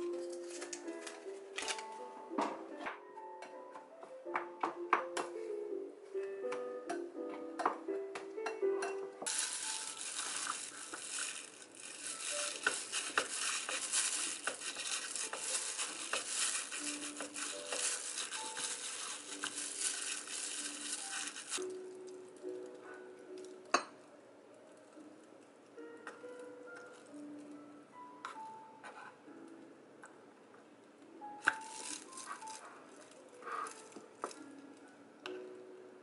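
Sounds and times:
plastic glove crinkling: 0:00.0 - 0:02.0, 0:09.2 - 0:22.4, 0:31.4 - 0:34.5
soft background music: 0:00.0 - 0:36.0.

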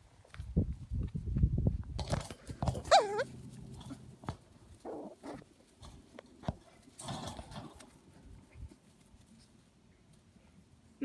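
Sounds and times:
puppy scuffling: 0:02.0 - 0:10.3
puppy yelping and yipping: 0:02.8 - 0:03.4.

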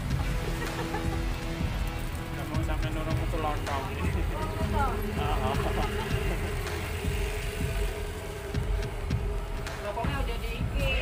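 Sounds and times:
low engine rumble: 0:00.0 - 0:11.0
steady hum: 0:03.2 - 0:11.0.

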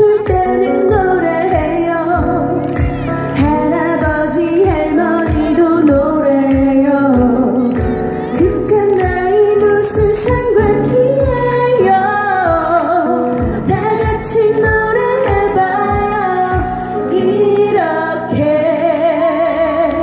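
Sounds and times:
upbeat pop backing track: 0:00.0 - 0:20.0
woman singing into microphone: 0:00.0 - 0:20.0.

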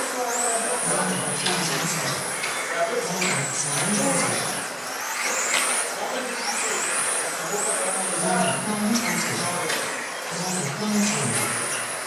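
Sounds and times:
high-pitched electric motor whine: 0:00.0 - 0:12.0.

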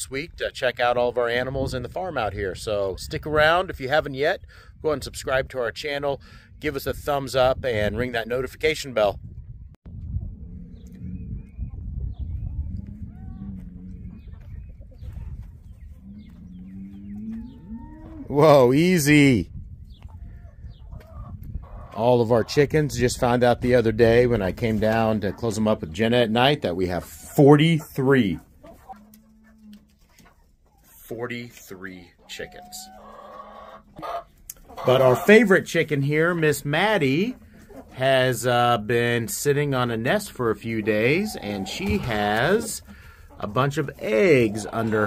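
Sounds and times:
chickens clucking: 0:06.5 - 0:45.0
cattle mooing: 0:16.0 - 0:18.4, 0:40.9 - 0:42.7
person speaking: 0:38.0 - 0:45.0.

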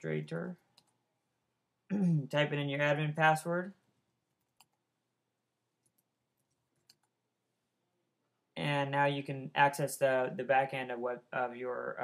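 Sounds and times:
computer clicks: 0:04.4 - 0:04.8.

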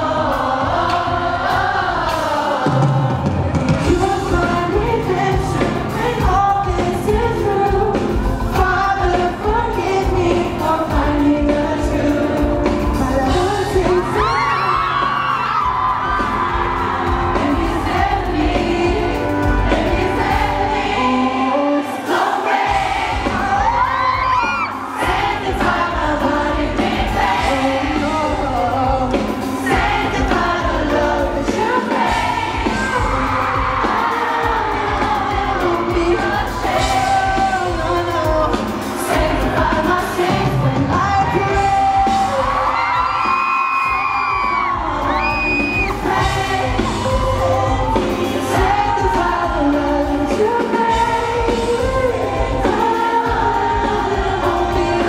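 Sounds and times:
live pop band: 0:00.0 - 0:55.0
man singing: 0:02.7 - 0:15.1, 0:27.4 - 0:31.9, 0:32.7 - 0:43.1.

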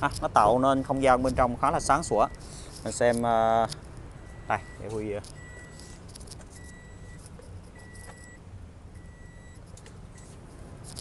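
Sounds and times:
dashboard warning chime beeping: 0:01.7 - 0:02.7, 0:03.6 - 0:10.4.

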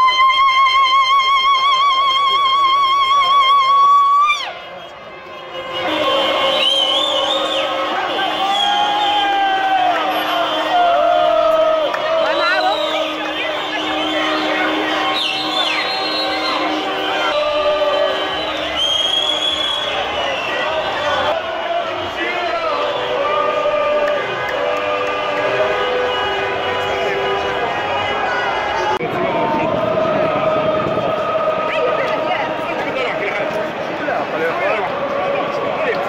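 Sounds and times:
crowd chanting and cheering: 0:04.5 - 0:36.0.

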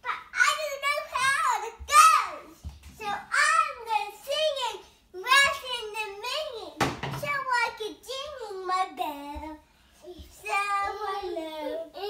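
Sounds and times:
toddler girl singing: 0:07.4 - 0:12.0.

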